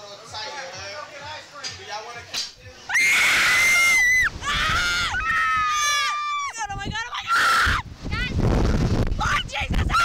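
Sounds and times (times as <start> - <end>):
girls screaming: 2.9 - 6.6, 7.2 - 7.8.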